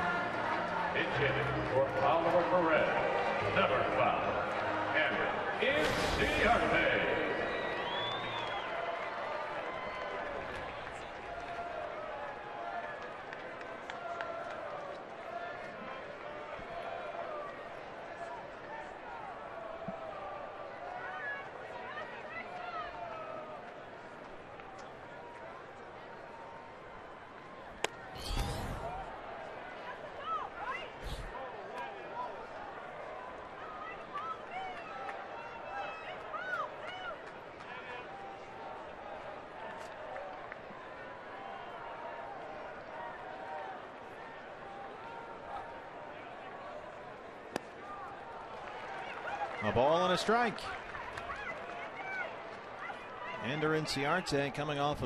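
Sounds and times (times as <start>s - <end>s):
crowd murmur: 0.0s - 8.6s, 27.4s - 32.7s
crowd noise burst: 4.4s - 9.0s, 27.8s - 29.8s, 30.8s - 31.8s.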